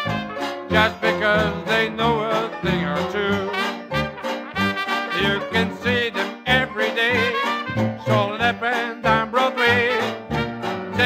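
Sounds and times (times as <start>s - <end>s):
dixieland jazz band playing: 0.0s - 11.0s.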